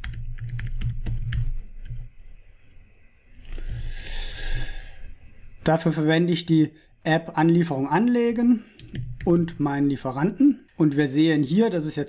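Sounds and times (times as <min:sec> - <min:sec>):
typing on computer keyboard: 0:00.0 - 0:02.4, 0:08.7 - 0:09.6.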